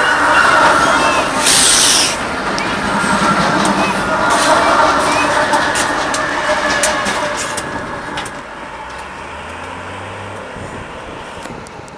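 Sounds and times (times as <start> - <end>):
diesel locomotive engine drone: 0.0 - 11.9
wheels clattering over rails: 0.2 - 9.8.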